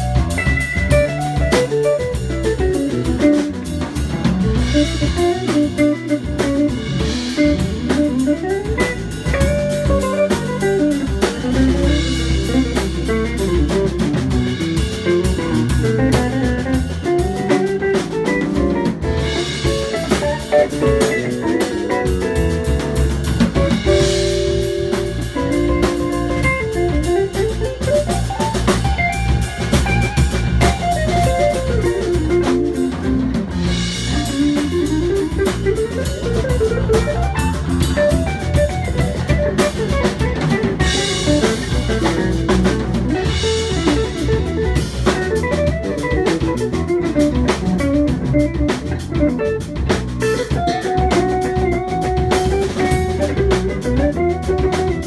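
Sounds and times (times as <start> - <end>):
drum kit: 0.0 - 55.0
electric bass: 0.0 - 55.0
electric guitar melody: 0.0 - 55.0.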